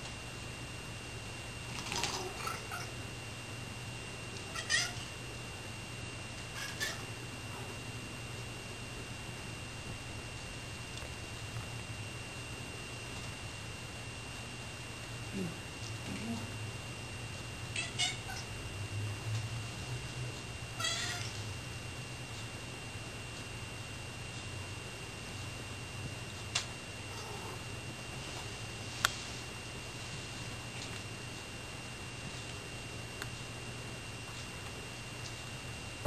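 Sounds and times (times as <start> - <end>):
steady low hum: 0.0 - 36.0
cat meowing: 4.5 - 5.1, 6.6 - 7.1, 17.7 - 18.5, 20.8 - 21.4
faint cat chirp: 6.6 - 7.1.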